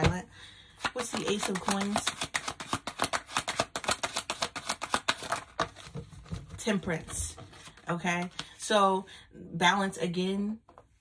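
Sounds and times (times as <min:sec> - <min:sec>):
cards being shuffled: 0:00.7 - 0:08.6.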